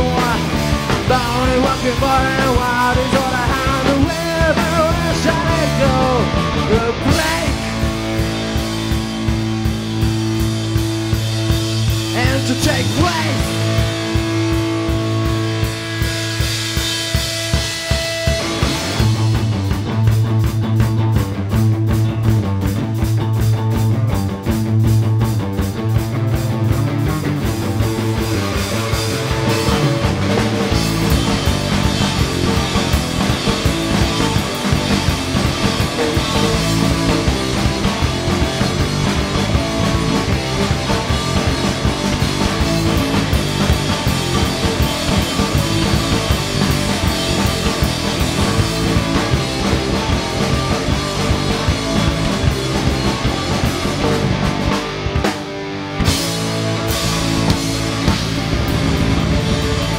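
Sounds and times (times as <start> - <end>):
rock band instrumental: 0.0 - 59.9.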